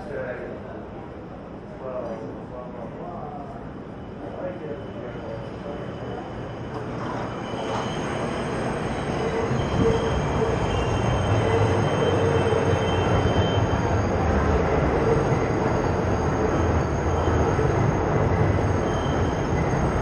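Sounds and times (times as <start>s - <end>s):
subway train rumbling: 0.0s - 20.0s
train wheels squealing: 3.3s - 20.0s.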